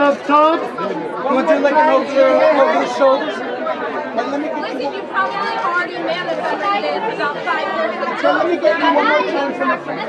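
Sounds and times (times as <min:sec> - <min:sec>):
background chatter: 0:00.0 - 0:10.0.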